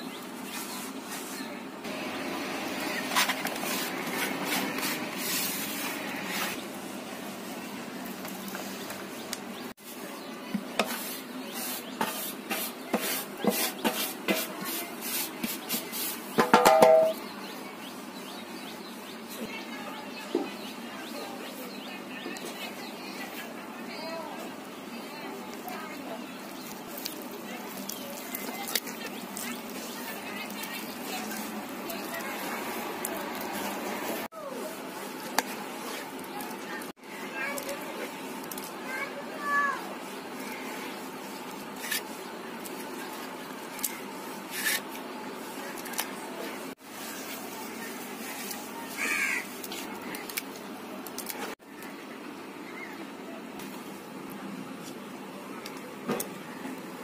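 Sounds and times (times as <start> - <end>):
hand scraping flour off bowl: 10.6 - 17.2
metal bowl knocking pot rim: 16.4 - 17.2.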